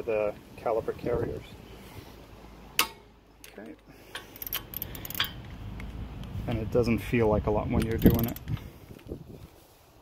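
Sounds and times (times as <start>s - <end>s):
metallic clicks of wrench: 2.8s - 6.6s, 7.7s - 9.1s.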